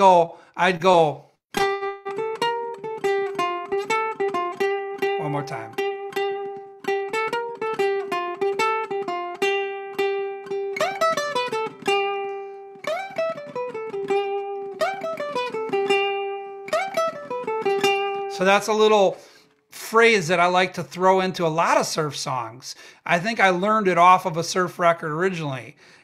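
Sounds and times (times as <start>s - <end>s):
ukulele playing: 1.5s - 19.4s.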